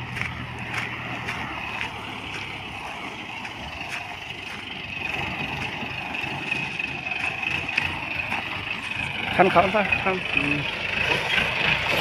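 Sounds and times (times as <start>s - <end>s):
diesel engine running: 0.0s - 12.0s
tyres over gravel: 0.0s - 12.0s.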